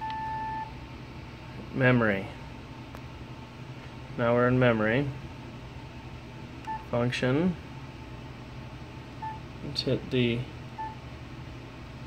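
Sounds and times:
key-press beep with click: 0:00.0 - 0:00.6
low steady hum: 0:00.0 - 0:12.0.

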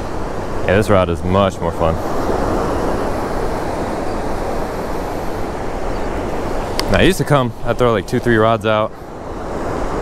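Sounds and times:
surf breaking on beach: 0:00.0 - 0:10.0
wind on microphone: 0:00.0 - 0:10.0.

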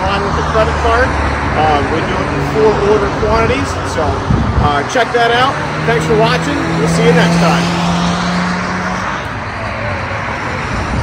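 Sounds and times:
highway traffic rushing: 0:00.0 - 0:11.0.

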